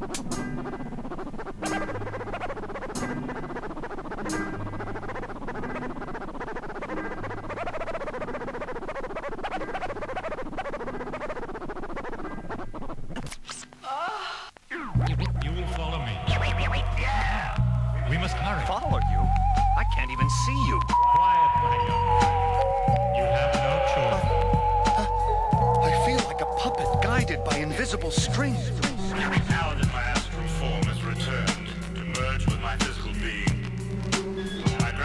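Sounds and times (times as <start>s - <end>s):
turntable scratches: 0.0s - 13.8s, 14.6s - 35.0s
hip-hop beat with bass and drums: 14.7s - 35.0s.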